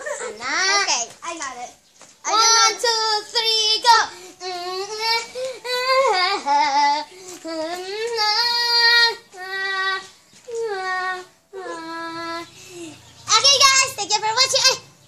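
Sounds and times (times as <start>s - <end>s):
girl singing long held notes: 2.3s - 13.0s.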